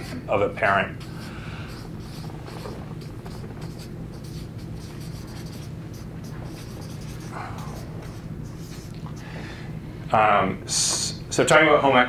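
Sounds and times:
marker pen scratching on paper: 0.0s - 9.2s.

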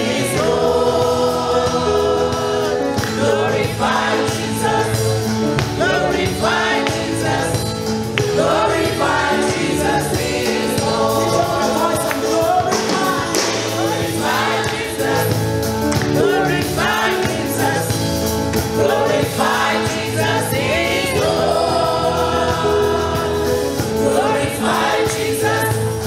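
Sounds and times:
instrumental accompaniment: 0.0s - 26.0s
women singing gospel song: 0.0s - 26.0s.

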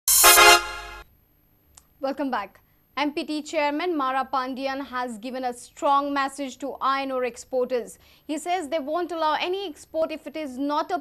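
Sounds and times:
short synthesized chord: 0.1s - 1.0s.

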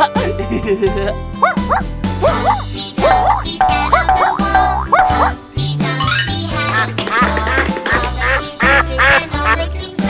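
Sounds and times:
upbeat children's music: 0.0s - 10.0s
cartoon duck quacks: 2.3s - 5.3s, 8.2s - 9.6s.

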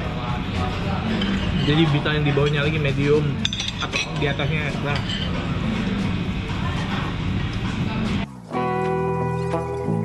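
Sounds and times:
murmur of restaurant voices: 0.0s - 10.0s
plucked background music: 0.0s - 10.0s.

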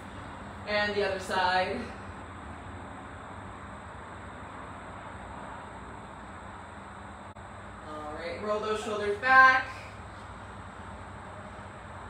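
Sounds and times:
distant highway traffic: 0.0s - 12.0s.

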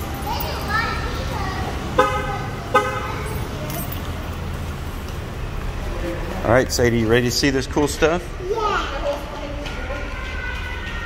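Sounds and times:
car horn chirps: 2.0s - 3.2s.

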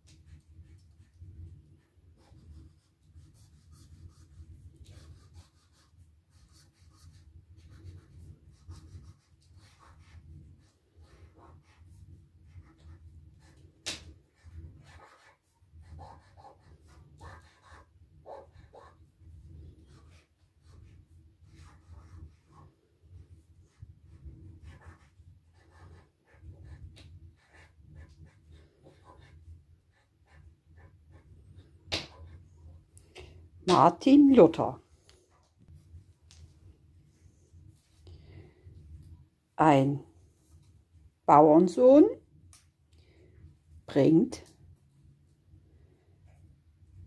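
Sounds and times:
marker scratching on board: 0.1s - 32.8s.

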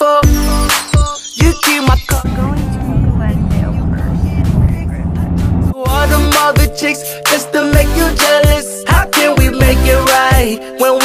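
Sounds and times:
woman talking: 2.2s - 5.6s
car cabin rumble: 2.2s - 5.8s.

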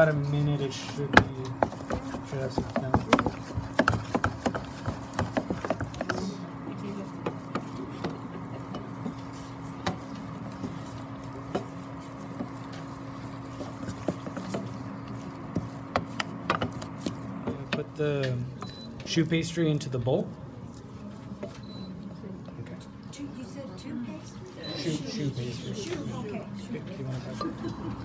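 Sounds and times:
wooden spoon knocking and scraping pan: 0.0s - 18.0s
steady low hum: 0.0s - 21.4s, 27.2s - 28.0s.

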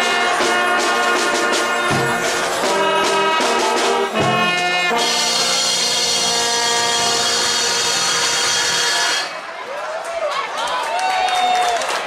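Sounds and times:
brass band playing chords: 0.0s - 9.6s
crowd cheering: 0.0s - 12.0s.

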